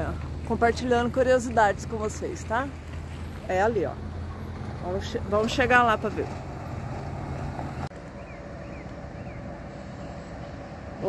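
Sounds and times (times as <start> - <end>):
distant road traffic: 0.0 - 11.0.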